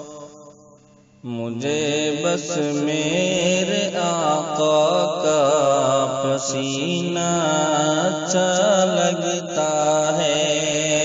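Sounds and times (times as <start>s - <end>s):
man chanting devotional song: 0.0s - 11.0s.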